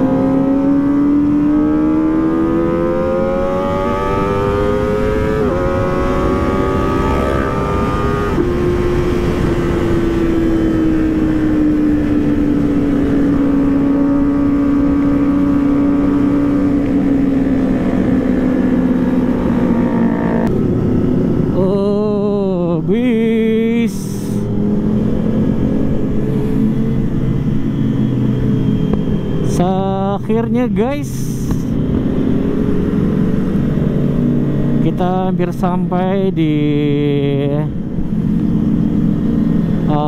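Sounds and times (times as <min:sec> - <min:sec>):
motorcycle engine at high revs: 0:00.0 - 0:40.0
wind rush: 0:03.4 - 0:29.5.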